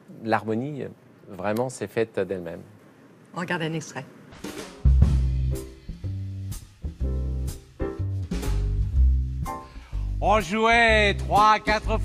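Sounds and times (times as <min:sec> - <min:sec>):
snare and cymbal strokes: 0:04.3 - 0:10.0
deep bass notes: 0:04.9 - 0:12.0
jazz quartet music: 0:04.9 - 0:12.0.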